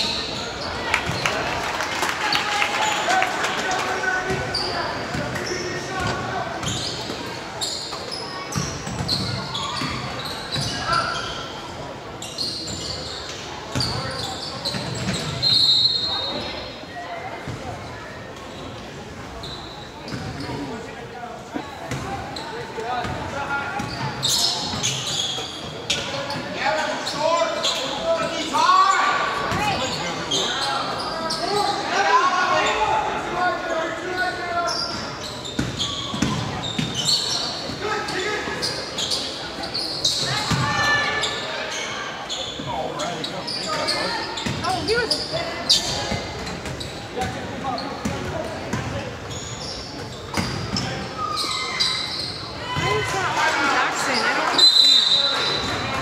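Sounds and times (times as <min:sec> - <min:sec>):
sneakers squeaking: 0:00.0 - 0:01.4, 0:04.1 - 0:20.9, 0:21.6 - 0:56.0.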